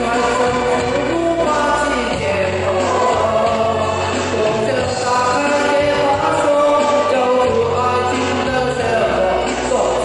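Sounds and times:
backing music: 0.0 - 10.0
man singing into a microphone: 0.0 - 10.0.

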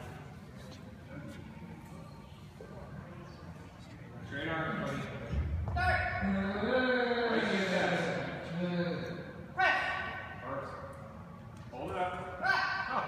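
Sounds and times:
man shouting a command: 9.6 - 10.2, 12.4 - 13.0.

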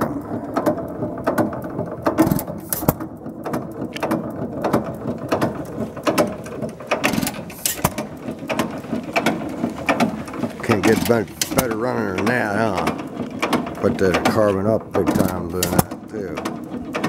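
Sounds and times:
gas engine valve gear clicking: 0.0 - 17.0
gas engine firing strokes: 5.4 - 13.0.

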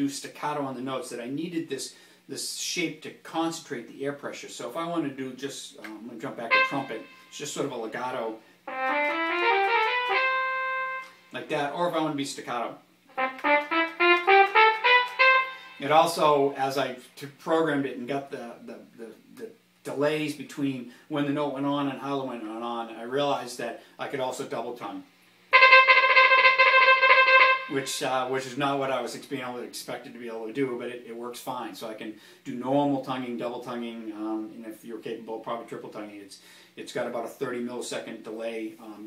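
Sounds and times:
synthesized trumpet phrase: 6.4 - 7.4, 8.7 - 11.2, 13.1 - 16.2, 25.5 - 28.2.

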